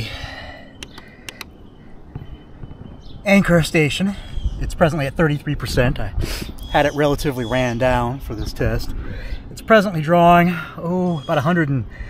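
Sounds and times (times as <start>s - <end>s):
light clicks: 0.8s - 1.6s.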